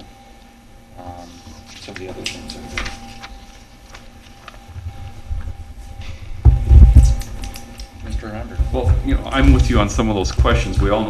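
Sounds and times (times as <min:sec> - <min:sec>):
faint steady hum: 0:00.0 - 0:11.0
muffled low thumps and rumble: 0:06.3 - 0:07.5, 0:08.1 - 0:11.0.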